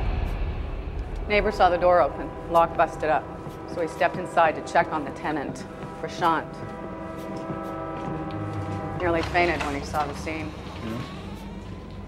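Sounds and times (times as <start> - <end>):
droning chord of held tones: 1.5 - 12.0
deep low note: 7.4 - 11.8.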